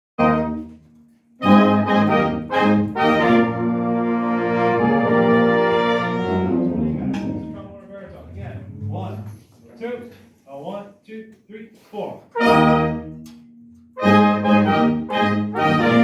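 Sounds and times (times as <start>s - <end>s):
marching band chords: 0.2s - 9.4s, 12.3s - 16.0s.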